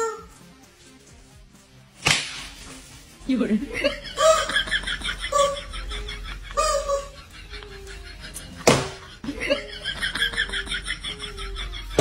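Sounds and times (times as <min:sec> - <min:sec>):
leather belt smacking: 0:02.0 - 0:02.6
people laughing: 0:03.6 - 0:12.0.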